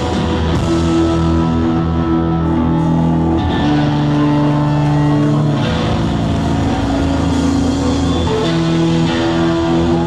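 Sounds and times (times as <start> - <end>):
distorted electric guitars sustained: 0.0 - 10.0
rock band playing loud: 0.0 - 10.0.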